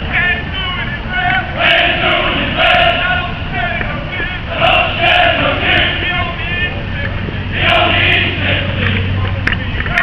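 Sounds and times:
loud call: 0.0s - 6.8s
men chanting in unison: 0.1s - 9.2s.

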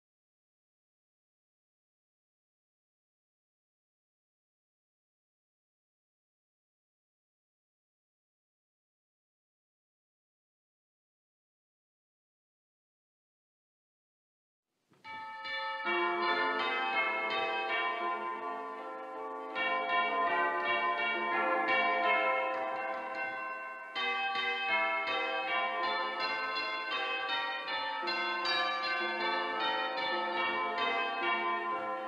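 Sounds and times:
bell struck: 15.1s - 32.0s
church bells ringing: 15.1s - 32.0s.

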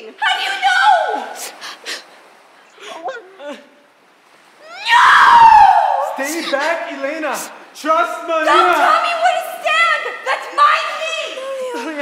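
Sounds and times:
person screaming high-pitched: 4.6s - 6.0s.

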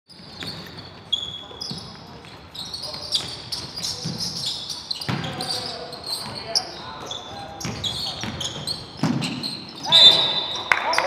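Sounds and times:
sneaker squeaks: 0.1s - 11.0s
basketball bouncing on wooden floor: 5.1s - 5.4s, 7.6s - 9.4s.

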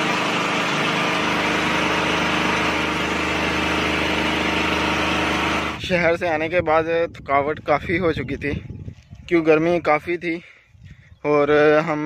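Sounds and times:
portable generator running: 0.0s - 6.6s.

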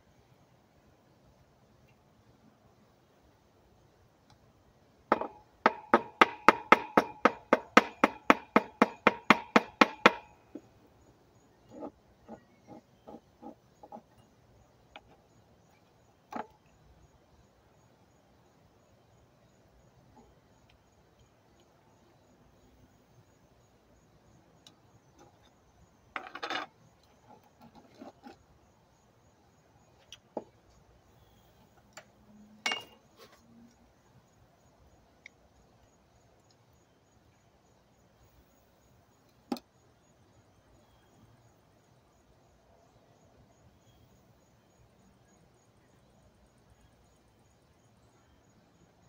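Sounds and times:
metal spoon tapping glass jar: 32.7s - 33.0s.

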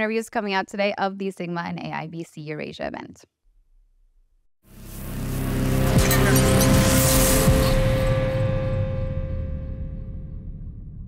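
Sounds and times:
ringing chord: 4.7s - 10.6s
low rumble: 4.8s - 11.0s.

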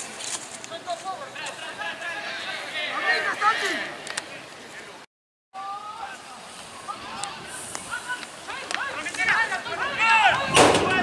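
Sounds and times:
players shouting short calls: 0.7s - 4.9s, 5.6s - 11.0s.

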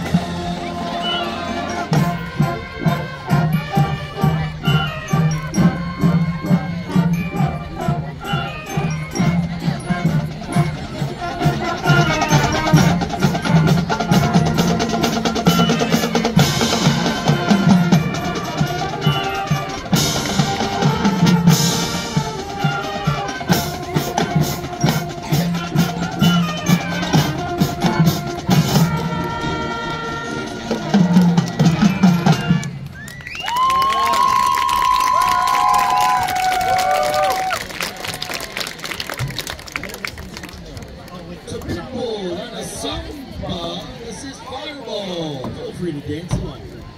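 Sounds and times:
marching band playing: 0.0s - 39.6s
crowd applause and cheers: 30.8s - 41.4s.

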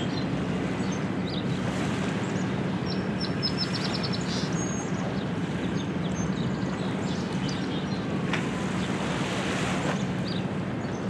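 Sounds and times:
small birds chirping: 0.0s - 8.1s
constant hum: 0.0s - 11.0s.

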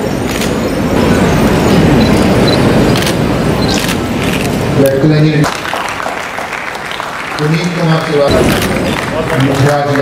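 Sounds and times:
crowded hall rumble: 0.0s - 10.0s.

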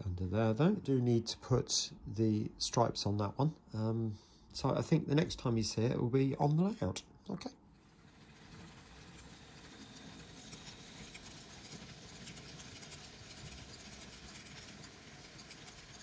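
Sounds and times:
model train rumbling: 7.8s - 16.0s
wheels clicking over rail joints: 8.0s - 16.0s.

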